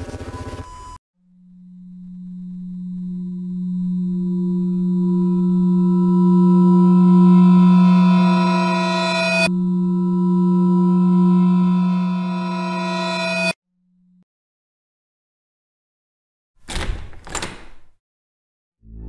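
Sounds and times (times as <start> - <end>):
low drone with shimmering overtones: 1.2 - 13.6.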